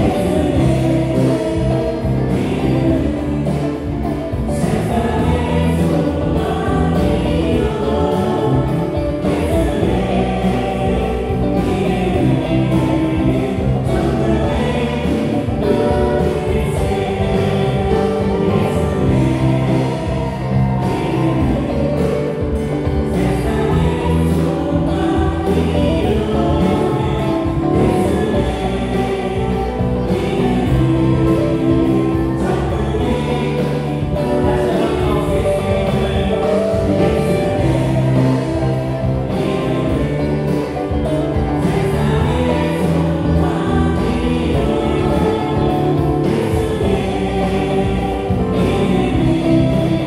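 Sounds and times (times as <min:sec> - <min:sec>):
bass guitar: 0:00.0 - 0:50.0
drums: 0:00.0 - 0:50.0
electric guitars: 0:00.0 - 0:50.0
group singing together: 0:00.0 - 0:50.0
keyboards: 0:00.0 - 0:50.0
worship band playing: 0:00.0 - 0:50.0.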